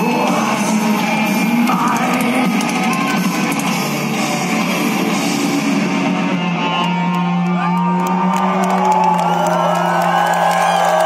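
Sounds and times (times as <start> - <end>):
crowd cheering and whooping: 5.7 - 11.0.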